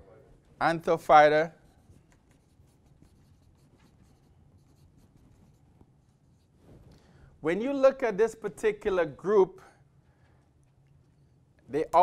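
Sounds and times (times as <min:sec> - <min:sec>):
low room hum: 0:00.0 - 0:12.0
marker writing on whiteboard: 0:01.4 - 0:06.6.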